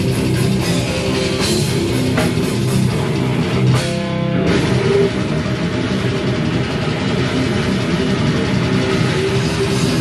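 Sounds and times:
death metal band playing live: 0.0s - 10.0s.

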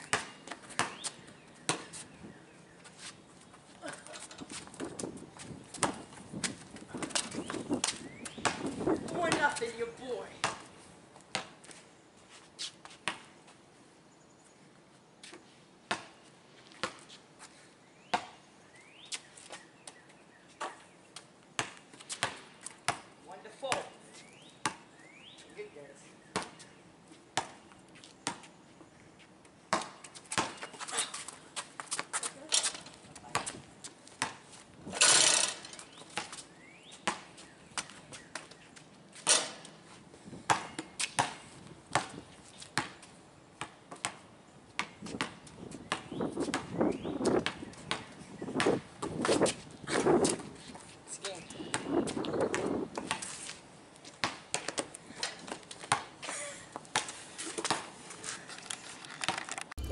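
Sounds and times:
basketball bouncing on concrete: 0.0s - 2.0s, 4.6s - 10.7s, 11.3s - 11.6s, 15.9s - 16.1s, 16.7s - 17.1s, 21.6s - 23.1s, 23.7s - 24.0s, 24.6s - 24.8s, 29.7s - 30.8s, 33.2s - 34.4s, 37.0s - 37.3s, 40.5s - 42.2s, 42.8s - 43.0s, 43.6s - 44.2s, 44.8s - 49.5s, 51.7s - 53.3s, 54.2s - 56.1s.

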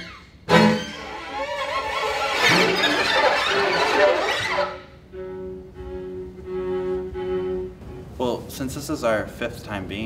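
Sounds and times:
string quartet sliding bowed notes: 0.0s - 8.4s.

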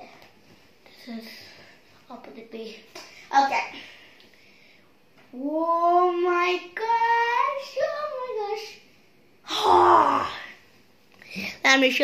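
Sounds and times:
loud breathy exclamation: 9.5s - 10.6s.

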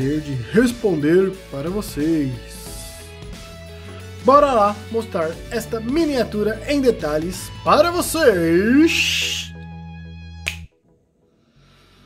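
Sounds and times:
background music chords: 0.0s - 12.0s
finger snap: 10.4s - 10.8s.

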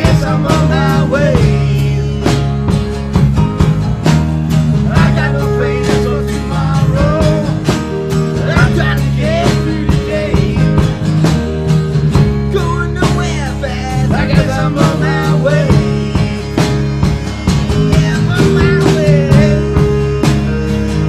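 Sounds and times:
two men singing together: 0.0s - 2.7s, 4.8s - 11.2s, 12.5s - 21.0s
acoustic guitar strumming: 0.0s - 21.0s
bass line: 0.0s - 21.0s.

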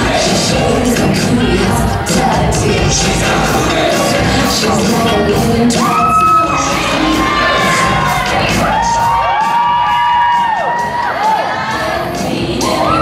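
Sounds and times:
dance music with steady beat: 0.0s - 13.0s
audience cheering and whooping: 5.7s - 13.0s.

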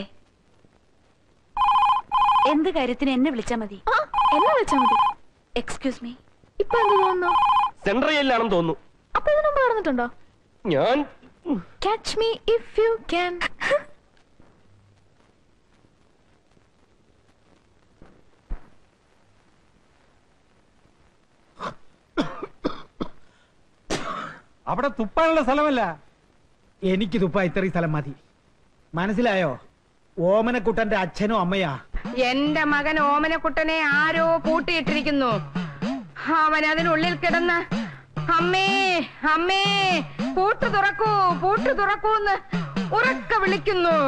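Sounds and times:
telephone ringing: 1.6s - 2.8s, 4.0s - 5.2s, 6.6s - 7.9s
man coughing: 21.6s - 23.2s, 23.9s - 24.5s.

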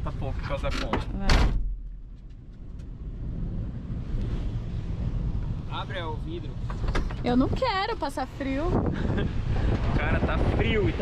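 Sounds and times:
strong wind on microphone: 8.3s - 11.0s.

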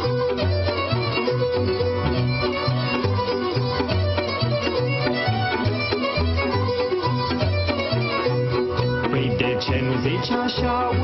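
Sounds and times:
instrumental folk dance music: 0.0s - 11.0s.

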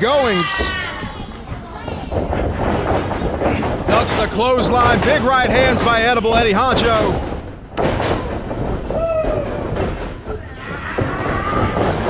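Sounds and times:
ring rumbling and rattling: 0.5s - 12.0s
thuds on wrestling ring: 2.0s - 12.0s.

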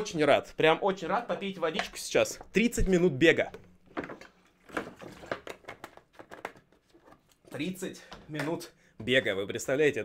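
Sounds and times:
plastic jug crinkling: 1.4s - 8.3s.

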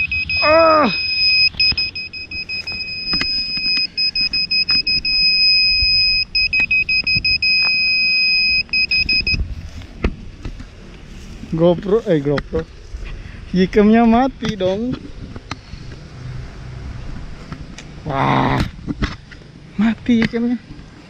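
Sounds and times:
shrill buzzer beeping: 0.0s - 9.4s.

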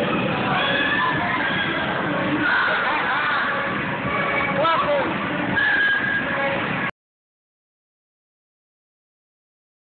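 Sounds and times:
children chattering: 0.0s - 5.1s
child's high squeal: 0.6s - 1.8s.

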